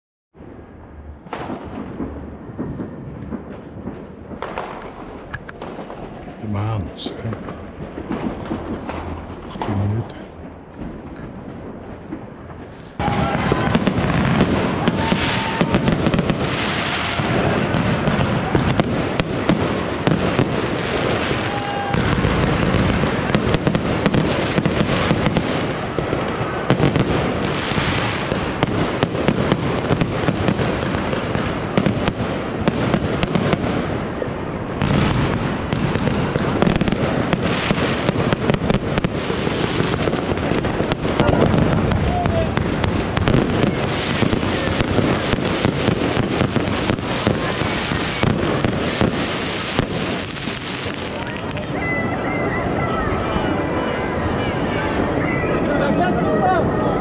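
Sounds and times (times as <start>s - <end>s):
fireworks crackling and bursting: 0.4s - 57.0s.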